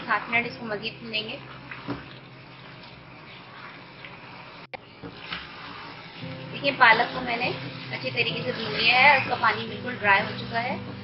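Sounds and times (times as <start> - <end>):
curry bubbling and sizzling in pot: 0.0 - 11.0
spatula stirring: 0.0 - 11.0.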